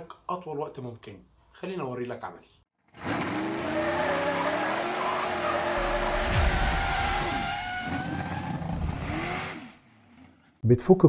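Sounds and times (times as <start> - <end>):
race car engine revving: 3.0 - 9.9
tyre screeching skid: 3.1 - 9.7
deep boom: 5.8 - 7.7.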